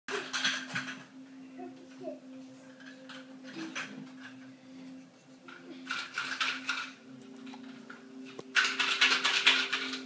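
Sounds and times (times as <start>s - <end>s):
small knocks and clatters: 0.1s - 1.2s, 2.7s - 4.6s, 5.4s - 10.0s
faint child vocal sounds: 1.4s - 2.8s.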